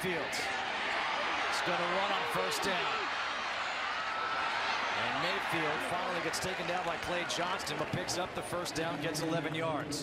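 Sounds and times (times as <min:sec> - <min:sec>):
stadium crowd din: 0:00.0 - 0:10.0.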